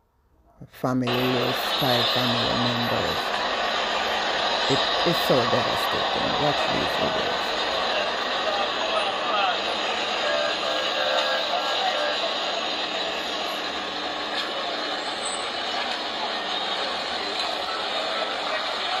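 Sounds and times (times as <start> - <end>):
traffic: 0.9 - 19.0
crowd talking: 1.0 - 19.0.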